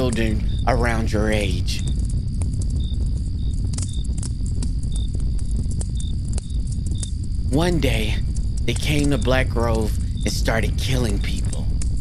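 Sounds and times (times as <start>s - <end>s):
crickets chirping: 0.0s - 12.0s
low steady rumble: 0.0s - 12.0s
sharp crackles: 0.0s - 12.0s.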